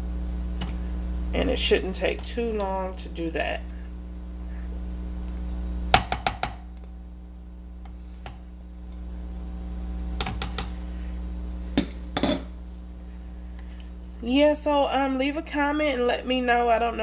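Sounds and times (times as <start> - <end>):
steady low hum: 0.0 - 17.0
plastic spatula tapping plastic tub: 6.0 - 6.6.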